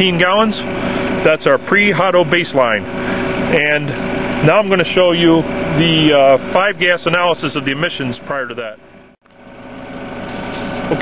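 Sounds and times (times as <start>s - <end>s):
steady mechanical hum: 0.0s - 11.0s.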